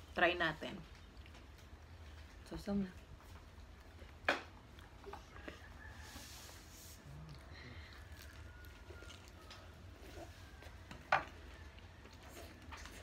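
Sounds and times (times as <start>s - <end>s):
quiet chewing: 0.5s - 13.0s.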